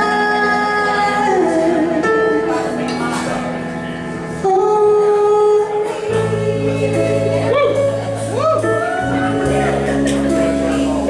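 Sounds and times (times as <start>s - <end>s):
woman singing a slow ballad: 0.0s - 2.9s, 4.3s - 10.6s
live band playing: 0.0s - 11.0s
deep low notes: 6.2s - 11.0s.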